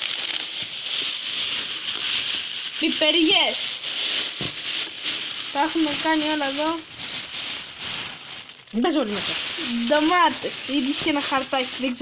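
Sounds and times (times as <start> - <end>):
plastic bags rustling: 0.0 - 12.0.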